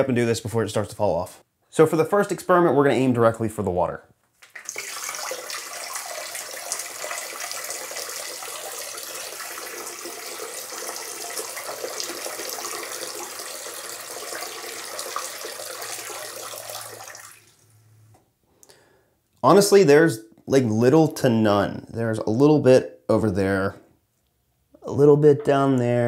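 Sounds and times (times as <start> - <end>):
liquid stream into toilet water: 4.4 - 17.7.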